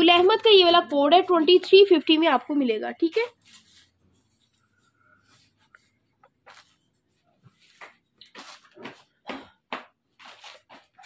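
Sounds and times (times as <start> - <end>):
cloth rustling: 3.2 - 9.2.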